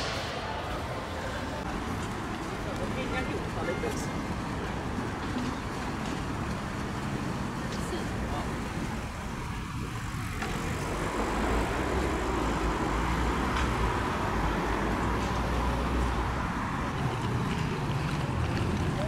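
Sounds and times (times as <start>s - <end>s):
people's voices: 0.0s - 19.0s
road traffic passing: 0.0s - 19.0s.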